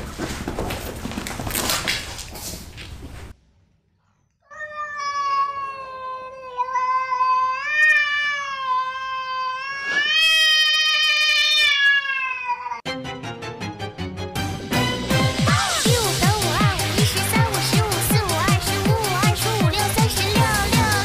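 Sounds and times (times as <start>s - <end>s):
cat meowing: 4.5s - 12.9s.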